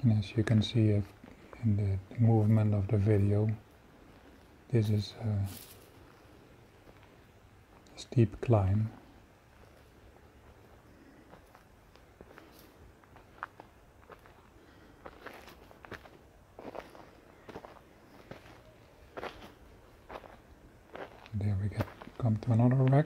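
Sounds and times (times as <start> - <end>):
man's voice: 0.0 - 3.6, 4.7 - 5.6, 21.3 - 23.0
footsteps on dry pine needles: 2.3 - 7.8, 9.5 - 23.0.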